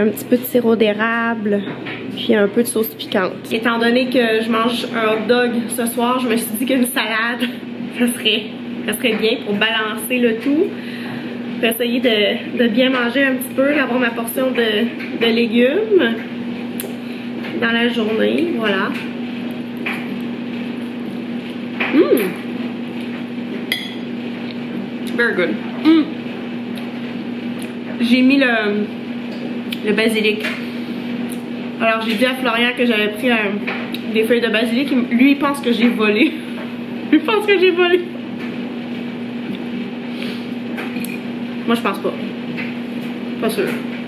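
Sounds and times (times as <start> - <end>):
low hum with faint hiss: 0.0 - 44.0
woman humming mmh: 21.9 - 22.4, 25.8 - 26.2.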